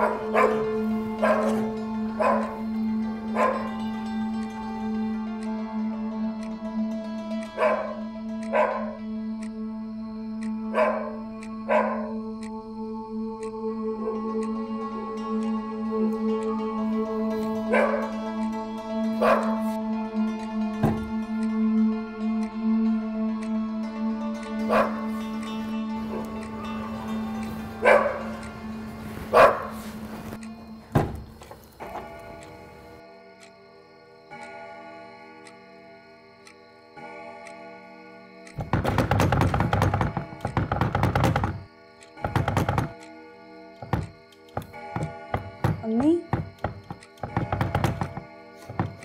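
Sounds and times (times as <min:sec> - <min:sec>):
dog barking: 0:00.0 - 0:02.7, 0:03.3 - 0:03.8, 0:07.5 - 0:09.0, 0:10.7 - 0:12.2, 0:17.7 - 0:18.2, 0:19.2 - 0:19.8, 0:24.6 - 0:25.2, 0:27.8 - 0:28.5, 0:29.3 - 0:30.0
background music with drone: 0:00.0 - 0:49.0.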